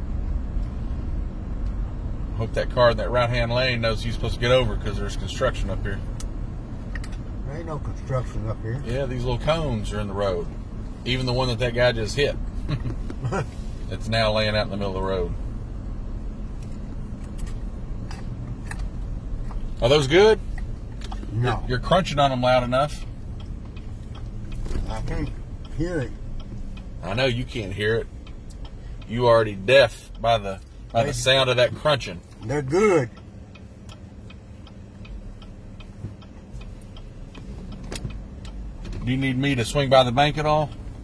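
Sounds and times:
car cabin road noise: 0.0s - 41.0s
light ticking: 8.2s - 41.0s.

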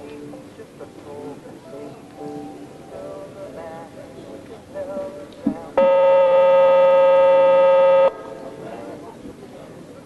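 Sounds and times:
electronic buzzer tone: 5.8s - 8.1s.

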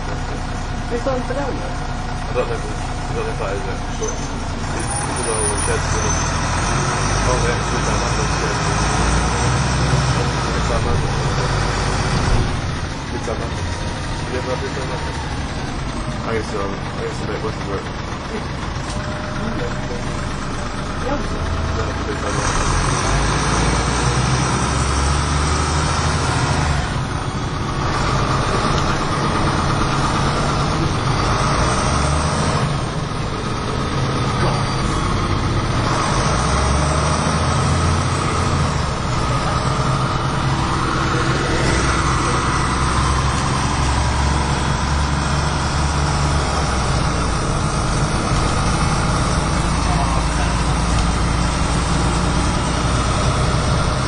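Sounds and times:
bus diesel engine running: 0.0s - 54.0s
drivetrain and road noise: 0.0s - 54.0s.

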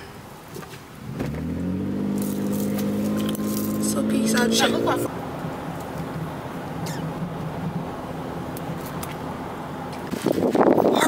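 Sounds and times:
car engine starting and running: 0.4s - 11.0s.

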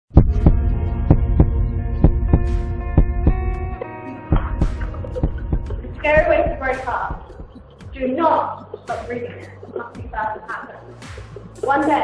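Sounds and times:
heartbeat-like double thump: 0.1s - 8.0s.

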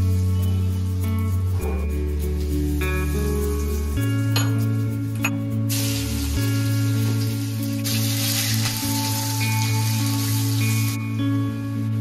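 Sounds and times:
leaves sizzling in hot oil: 5.7s - 11.2s.

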